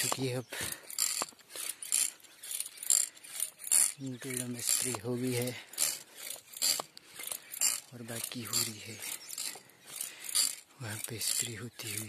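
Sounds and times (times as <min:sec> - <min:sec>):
sprayer pump clicking: 0:00.0 - 0:12.0.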